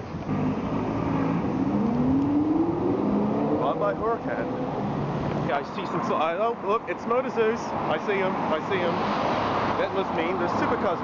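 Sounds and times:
traffic noise: 0.0 - 11.0
car engine accelerating: 0.2 - 5.5.

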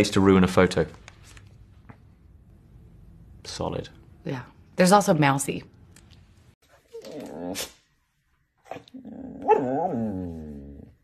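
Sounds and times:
dog whining: 6.8 - 7.8, 8.6 - 11.0.

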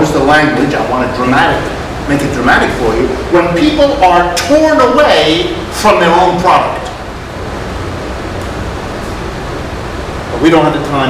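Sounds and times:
background hiss with low rumble: 0.0 - 11.0.

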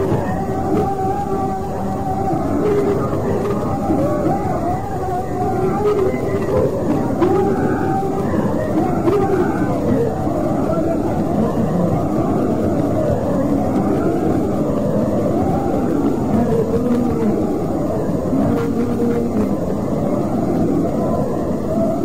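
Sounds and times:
low rumbling noise: 0.0 - 22.0
muffled indistinct speech: 0.0 - 22.0.

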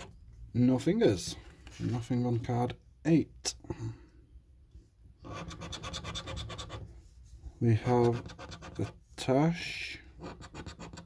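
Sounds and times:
scratch card being scratched: 5.2 - 6.9, 8.0 - 9.0, 10.2 - 11.0.

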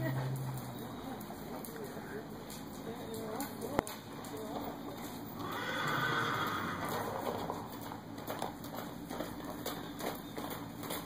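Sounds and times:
horse whinnying: 5.4 - 7.1.

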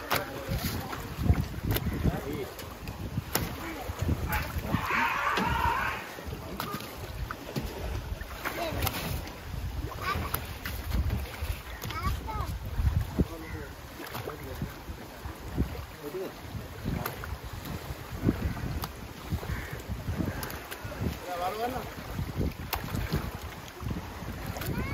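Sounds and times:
wind on microphone: 0.0 - 24.9
faint voices: 3.4 - 7.2.

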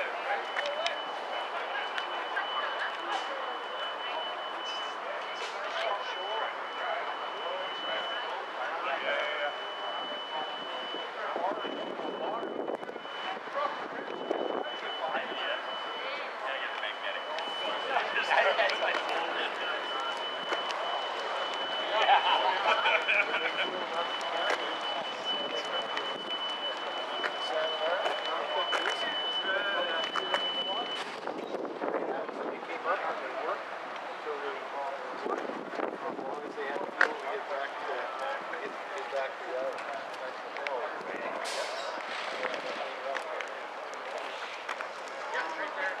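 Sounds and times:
steady high-pitched tone: 0.0 - 31.3
distant chatter of people: 0.0 - 46.0.

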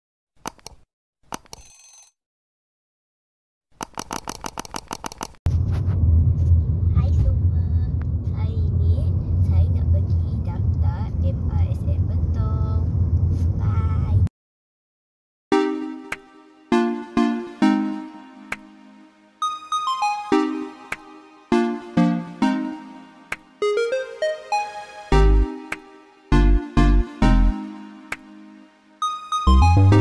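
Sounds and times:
run of evenly spaced clicks: 3.8 - 5.4
engine and road noise rumble: 5.5 - 14.3.

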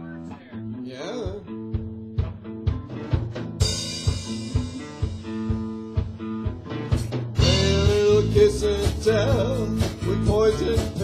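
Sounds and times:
bass guitar: 0.0 - 11.0
electric guitar: 0.0 - 11.0
drum kit steady beat: 1.2 - 11.0.

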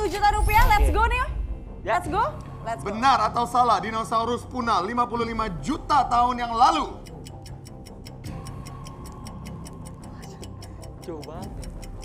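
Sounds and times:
countdown clock ticking: 0.0 - 12.0.

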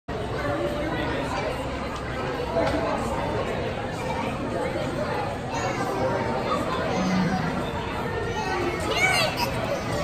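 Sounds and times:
indistinct chatter of people: 0.1 - 10.0.

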